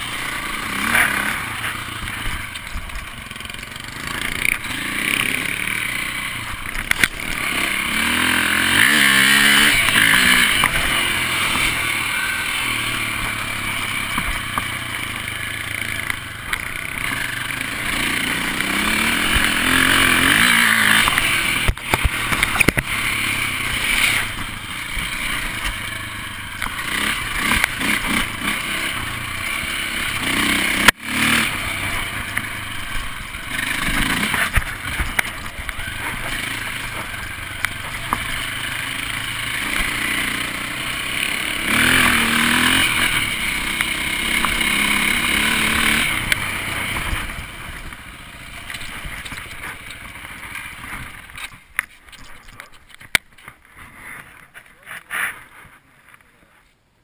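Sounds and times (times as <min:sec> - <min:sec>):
dirt bike engine revving: 0:00.0 - 0:51.5.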